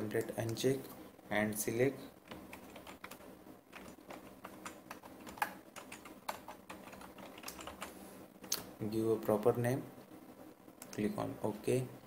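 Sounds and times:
typing on computer keyboard: 2.2s - 7.9s.

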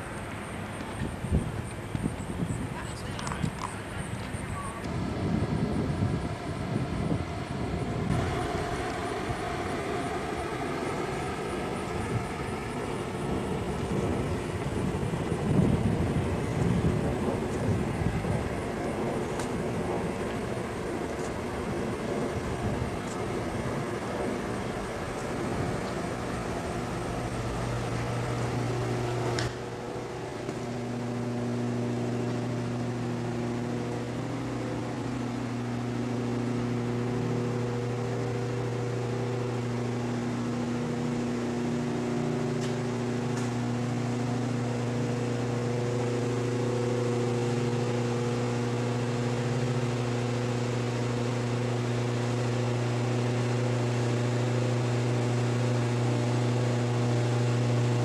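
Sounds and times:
low outdoor rumble: 0.0s - 58.0s
steady low hum: 0.0s - 58.0s.

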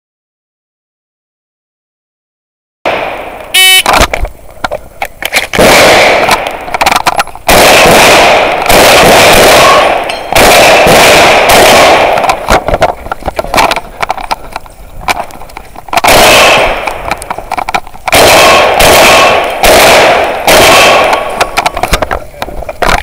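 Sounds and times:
short beep: 3.5s - 3.9s
shotgun shots at steel targets: 5.5s - 12.8s, 15.9s - 17.2s, 18.0s - 22.1s.

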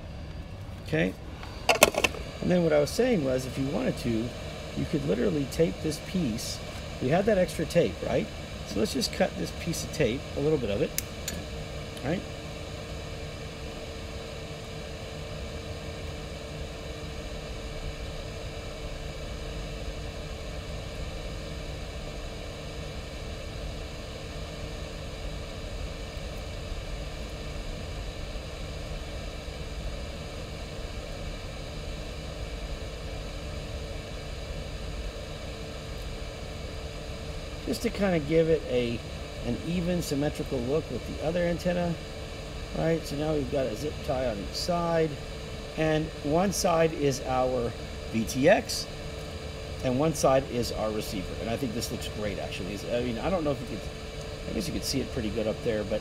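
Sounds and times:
background hum and hiss: 0.0s - 56.0s
faint constant tone: 0.0s - 56.0s.

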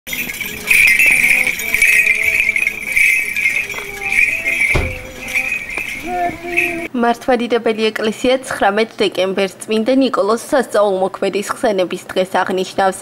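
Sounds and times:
censer bells jingling: 0.0s - 6.9s
men chanting held notes: 0.7s - 6.9s
thump: 4.7s - 5.2s.

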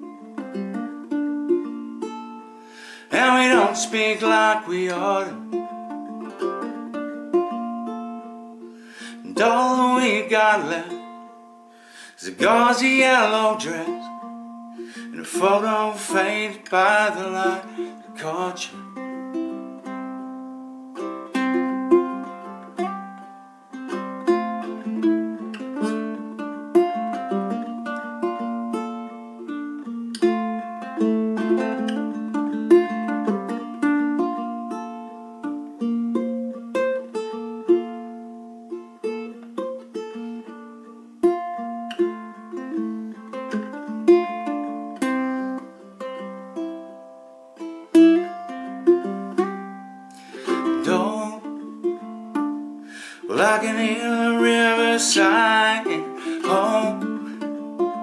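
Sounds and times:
ukulele playing melody: 0.0s - 58.0s.

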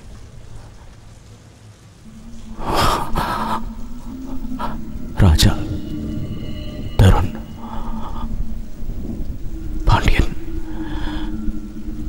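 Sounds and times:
steady rain: 0.0s - 12.0s
low hum: 2.1s - 12.0s.

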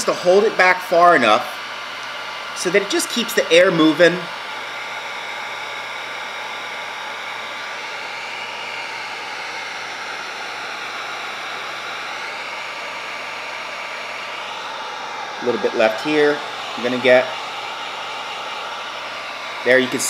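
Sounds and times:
heat gun blowing hot air: 0.0s - 20.0s.

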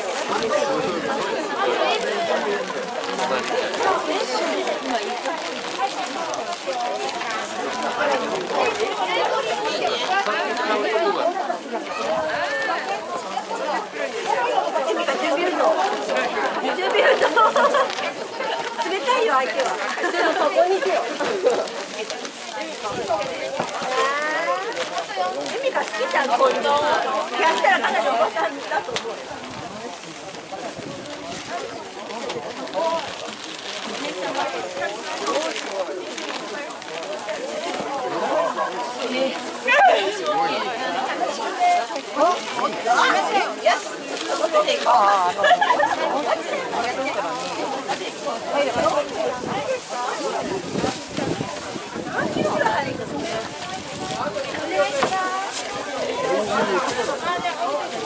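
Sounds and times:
people chattering: 0.0s - 58.0s
people talking over one another: 0.0s - 58.0s.

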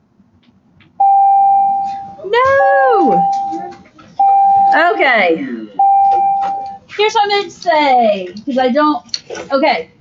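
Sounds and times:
electronic school bell beep: 4.2s - 4.9s, 5.8s - 6.8s.

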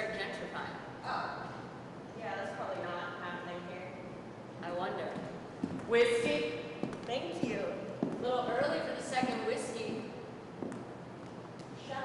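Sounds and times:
person speaking: 4.6s - 10.2s.

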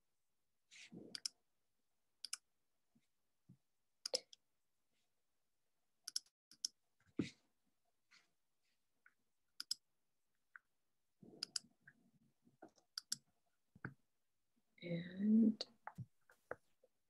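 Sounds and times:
computer mouse clicking: 1.1s - 1.4s, 2.2s - 2.5s, 6.1s - 6.8s, 9.6s - 9.8s, 11.4s - 11.7s, 12.7s - 13.2s.

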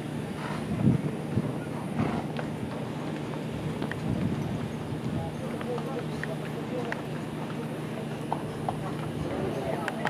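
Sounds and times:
horse hooves walking on dirt: 0.4s - 10.0s.

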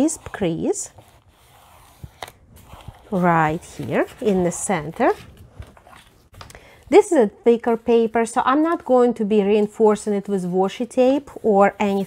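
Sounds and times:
woman's voice: 0.0s - 1.0s, 3.1s - 5.3s, 6.9s - 12.0s.

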